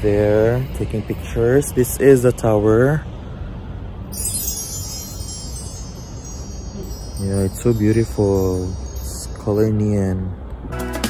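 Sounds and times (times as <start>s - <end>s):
low background noise: 0.0s - 10.8s
high shimmering chimes: 4.0s - 10.3s.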